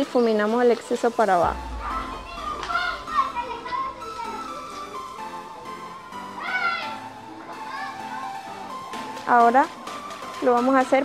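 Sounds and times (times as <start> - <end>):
background music: 0.0 - 11.0
children's voices: 1.4 - 5.2, 6.4 - 8.4.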